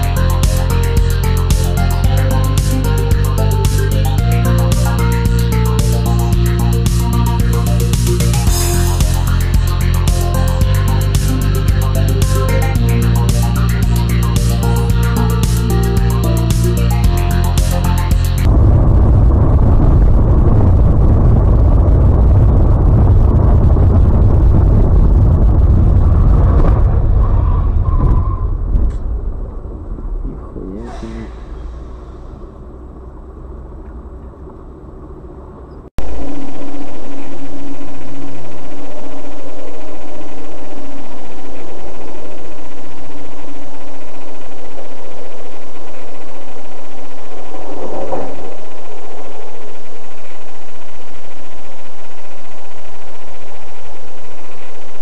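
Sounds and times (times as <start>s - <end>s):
steady loud drone: 0.0s - 33.0s, 36.0s - 55.0s
vehicle engine rumble: 0.0s - 55.0s.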